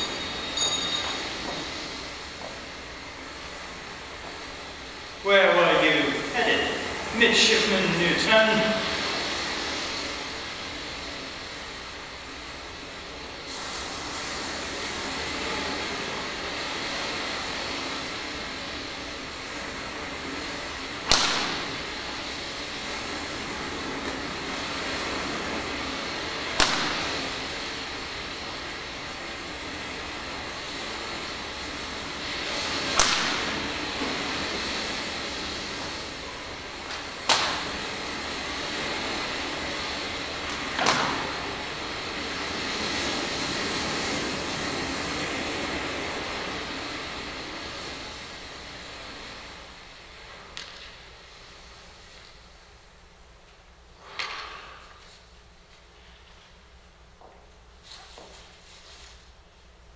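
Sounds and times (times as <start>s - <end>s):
steady background hiss: 0.0s - 59.9s
whip cracking: 21.0s - 21.9s, 26.6s - 27.4s, 32.9s - 33.8s, 36.9s - 37.8s.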